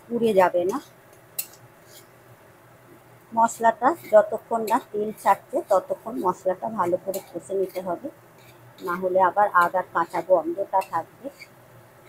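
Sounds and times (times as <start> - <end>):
spatula scraping paste in pan: 0.7 - 2.2, 3.8 - 9.0, 9.6 - 11.6.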